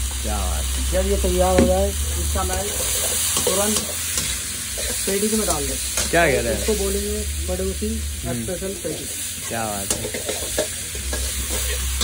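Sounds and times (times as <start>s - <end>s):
cabbage sizzling in a pan: 0.0s - 12.0s
metal spatula scraping and clinking: 9.5s - 12.0s.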